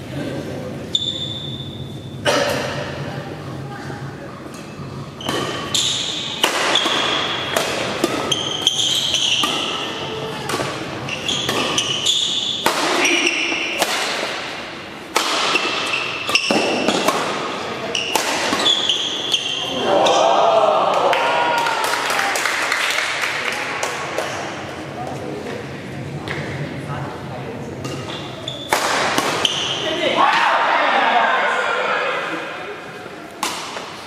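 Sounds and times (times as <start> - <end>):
spectators chatting: 0.0 - 8.4, 17.0 - 34.0
shoes squeaking on floor: 0.9 - 2.2, 5.2 - 7.4, 8.2 - 10.2, 11.0 - 13.6, 15.5 - 17.0, 17.8 - 19.7, 28.0 - 28.8, 29.4 - 29.9
racket striking shuttlecock: 5.2 - 10.8, 11.4 - 19.4, 27.8 - 29.8, 33.4 - 34.0.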